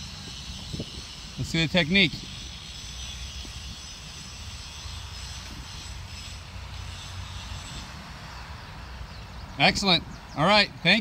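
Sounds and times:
wind rumble on microphone: 0.0s - 6.4s, 7.5s - 11.0s.

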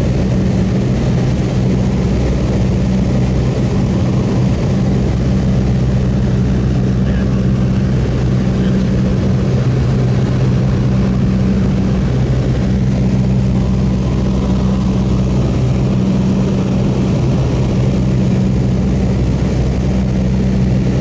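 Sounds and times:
propeller airplane engines droning: 0.0s - 21.0s
rushing air: 0.0s - 21.0s.

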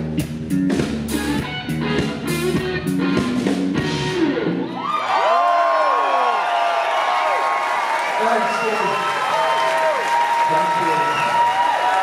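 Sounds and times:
audience cheering and whooping: 4.6s - 12.0s.

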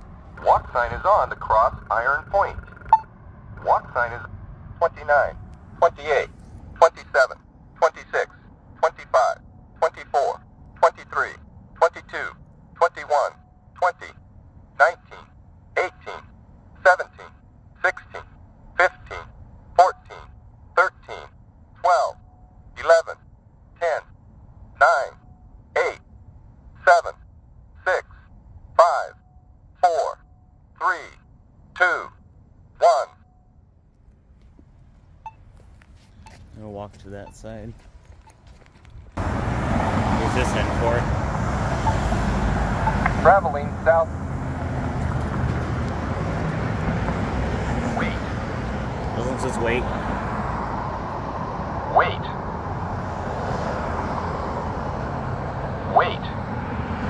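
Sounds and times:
low traffic rumble: 0.0s - 57.0s
push button speaker voice: 0.4s - 3.0s
synthesized voice counting: 0.4s - 3.0s, 3.6s - 14.2s, 14.8s - 22.2s, 22.8s - 23.2s, 24.8s - 25.2s, 26.8s - 27.2s, 28.8s - 29.2s, 29.8s - 30.2s, 32.8s - 33.2s, 47.8s - 48.3s, 51.9s - 52.4s, 55.9s - 56.4s.

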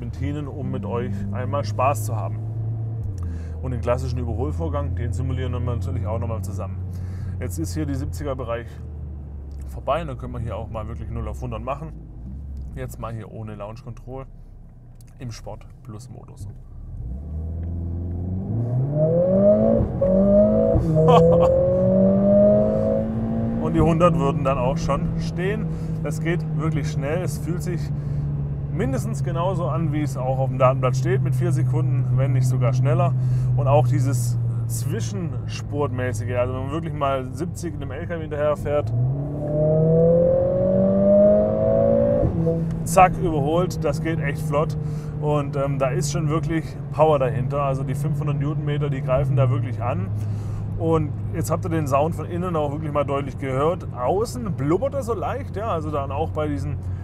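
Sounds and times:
car engine accelerating: 0.0s - 57.0s
automatic gear upshifts: 16.4s - 57.0s.

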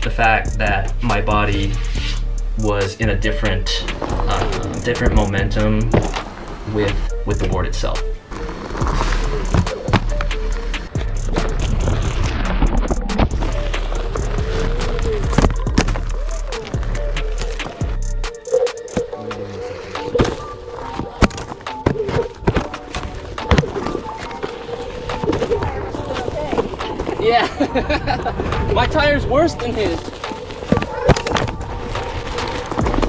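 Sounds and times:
background music: 0.0s - 33.0s
boards knocking and scraping ground: 3.9s - 33.0s.

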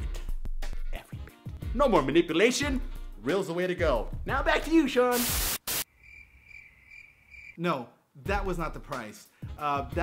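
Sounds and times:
crickets chirping: 5.8s - 7.6s.

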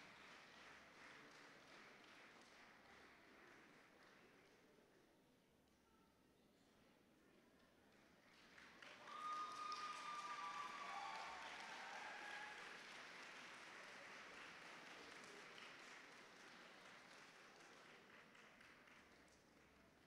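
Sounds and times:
faint audience applause: 0.0s - 4.9s, 7.5s - 20.0s
pitched calls from audience: 9.0s - 12.8s.

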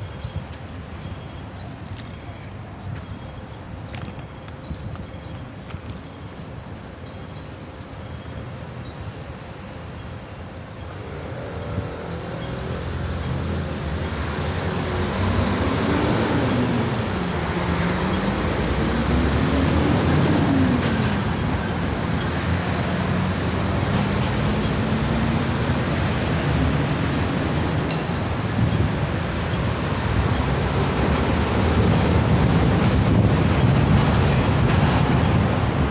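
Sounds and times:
road traffic noise: 0.0s - 35.9s.

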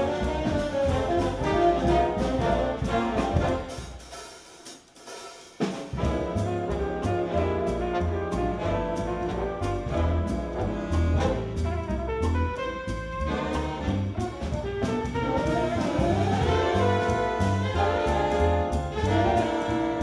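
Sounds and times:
jazz big band playing: 0.0s - 20.0s.

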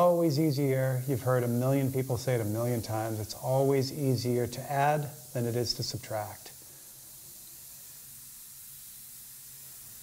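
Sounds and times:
airbrush spraying hiss: 0.0s - 10.0s.

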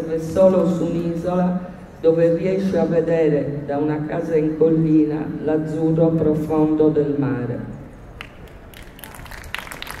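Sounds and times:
audience applause: 8.7s - 10.0s.

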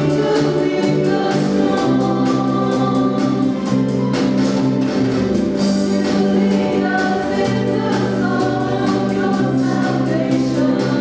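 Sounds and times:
choir singing gospel song: 0.0s - 11.0s
drum and cymbal hits: 0.0s - 11.0s
guitar: 0.0s - 11.0s
keyboard: 0.0s - 11.0s.

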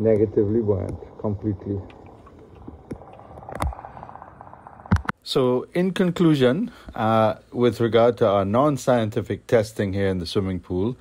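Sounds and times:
fast crackle of ticks: 0.0s - 5.1s
muffled underwater noise: 0.0s - 5.1s.

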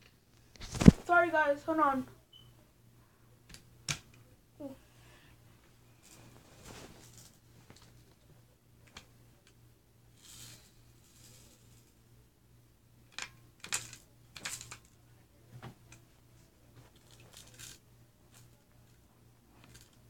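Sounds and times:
small hard objects clicking and rattling: 16.9s - 17.8s, 19.6s - 20.0s.

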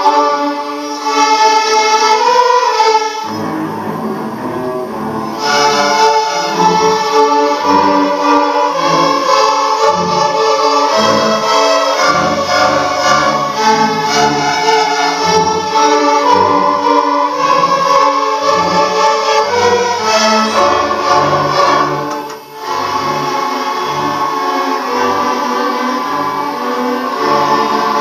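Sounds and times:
string orchestra playing dance tune: 0.0s - 28.0s.

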